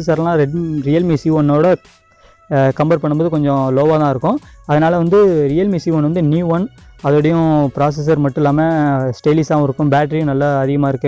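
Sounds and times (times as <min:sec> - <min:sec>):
man talking: 0:00.0 - 0:01.9, 0:02.5 - 0:11.0
faint background music: 0:00.0 - 0:11.0.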